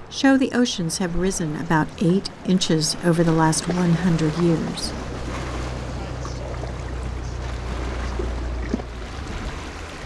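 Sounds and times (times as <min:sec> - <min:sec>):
steady low rumble: 0:00.0 - 0:10.0
water lapping against rocks: 0:01.2 - 0:10.0.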